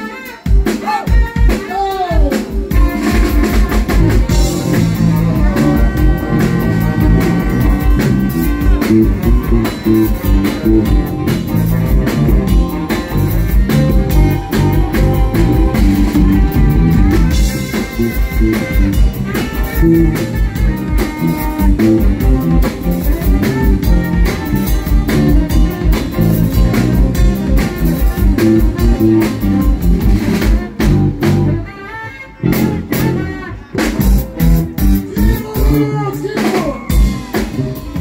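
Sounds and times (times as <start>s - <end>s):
drum kit steady beat: 0.0s - 31.7s, 32.4s - 38.0s
bass: 0.0s - 38.0s
electric guitar: 0.0s - 38.0s.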